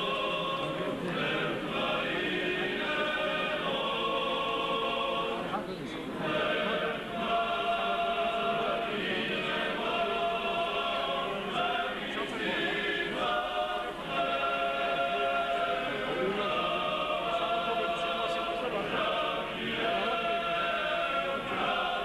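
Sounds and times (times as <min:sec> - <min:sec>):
church choir chanting: 0:00.0 - 0:05.6, 0:06.2 - 0:22.0.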